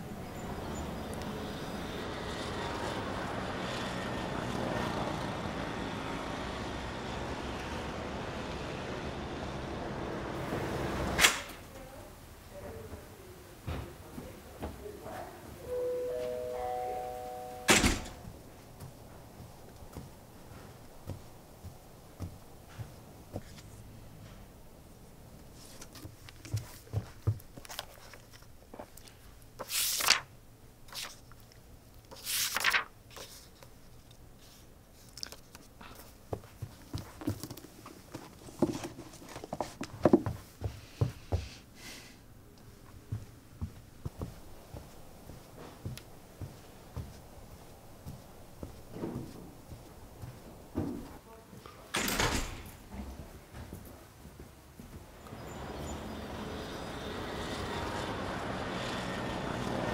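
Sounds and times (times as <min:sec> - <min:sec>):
distant traffic hum: 0:00.0 - 0:27.6, 0:42.2 - 0:59.9
book page turning: 0:27.6 - 0:30.3, 0:30.9 - 0:36.1.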